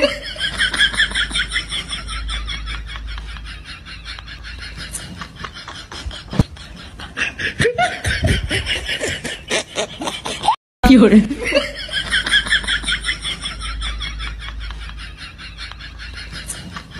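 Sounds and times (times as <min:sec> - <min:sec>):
person laughing: 0:00.0 - 0:10.6.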